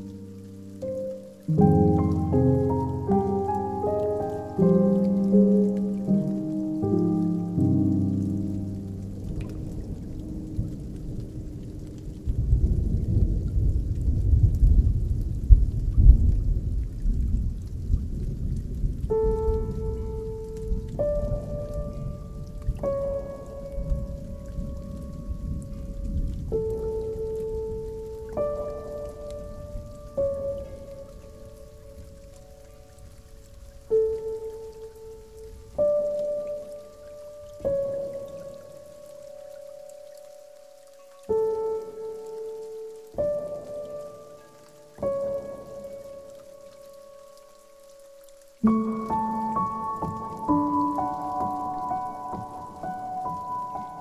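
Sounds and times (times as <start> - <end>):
melancholy ambient music: 0.0 - 15.4, 17.5 - 54.0
rain: 0.0 - 54.0
thunder rumbling: 6.2 - 33.9.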